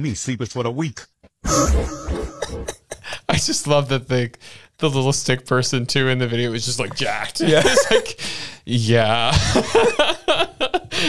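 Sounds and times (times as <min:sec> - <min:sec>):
person clearing throat: 0:02.3 - 0:03.1.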